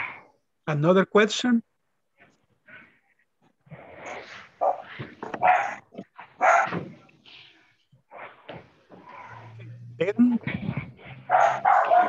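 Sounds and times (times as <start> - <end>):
dog barking: 4.6 - 6.9, 11.1 - 12.0.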